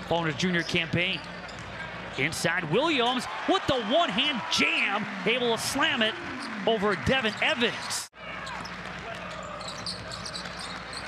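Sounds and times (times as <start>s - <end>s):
short high squeaks: 8.5s - 11.0s.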